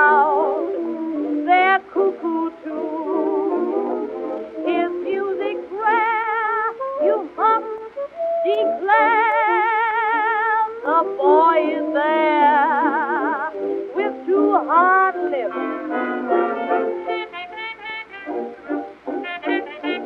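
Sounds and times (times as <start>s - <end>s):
jazz dance band: 0.0s - 20.0s
horn with vibrato: 15.4s - 20.0s.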